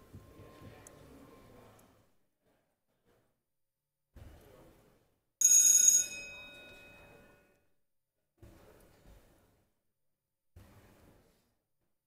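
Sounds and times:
bell ringing: 5.4 - 7.6.

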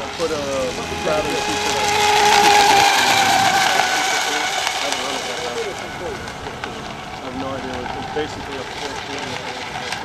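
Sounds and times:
boat motor high whine: 0.0 - 10.0.

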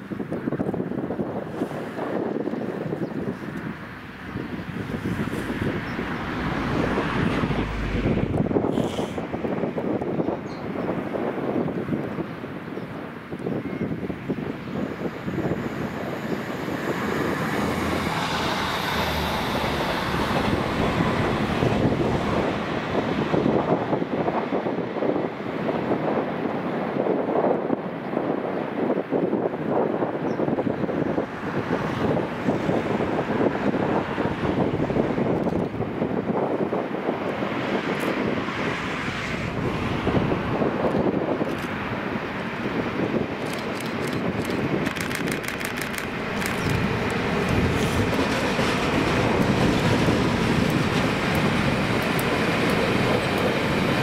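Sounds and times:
diesel locomotive engine: 0.0 - 54.0
wind on microphone: 0.0 - 54.0
train wheels on rails: 14.7 - 25.6, 39.2 - 54.0.

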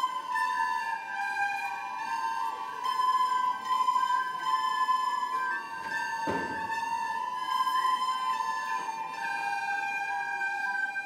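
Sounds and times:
recorders playing in unison: 0.0 - 11.0.

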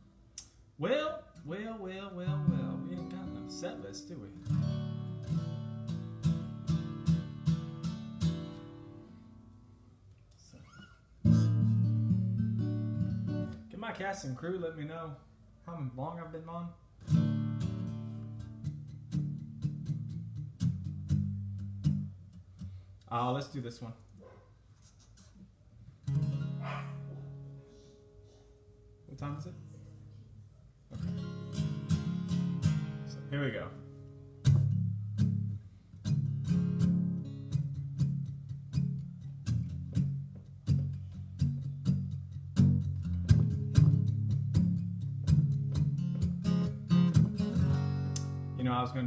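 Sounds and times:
acoustic guitar chord strummed: 0.0 - 9.9, 11.2 - 14.4, 17.0 - 22.9, 26.0 - 29.8, 30.9 - 49.0.

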